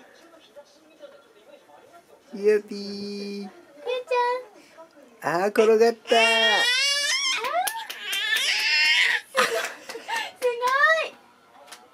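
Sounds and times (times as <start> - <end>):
infant squealing: 6.1 - 9.3.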